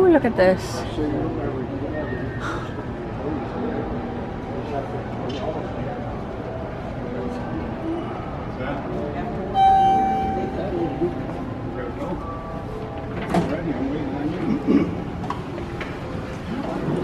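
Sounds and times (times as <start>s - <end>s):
murmur of voices: 0.0s - 17.0s
electronic elevator chime: 9.6s - 11.4s.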